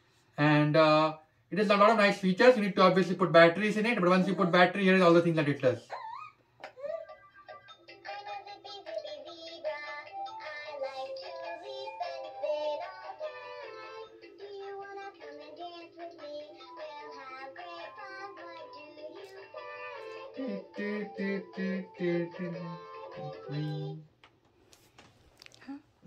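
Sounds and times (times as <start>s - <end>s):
synthesized voice singing: 8.0s - 24.1s.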